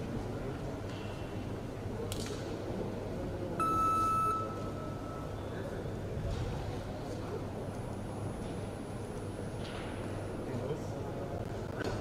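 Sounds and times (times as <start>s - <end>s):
low hum of large hall: 0.0s - 12.0s
electronic beep: 3.6s - 5.2s.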